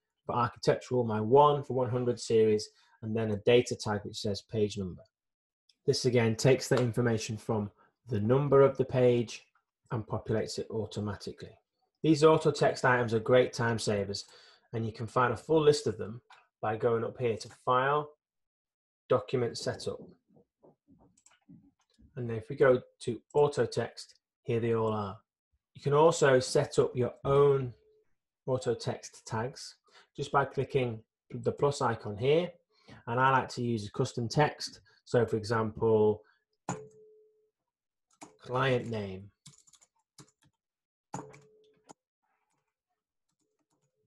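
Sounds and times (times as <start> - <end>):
faint keyboard typing: 38.1 - 40.6, 41.2 - 42.7, 43.3 - 44.0
computer mouse clicks: 39.5 - 40.6, 41.2 - 41.5.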